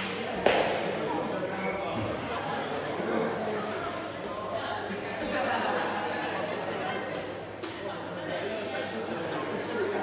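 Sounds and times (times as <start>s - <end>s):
background chatter: 0.0s - 10.0s
foot kicking shuttlecock: 0.4s - 1.0s.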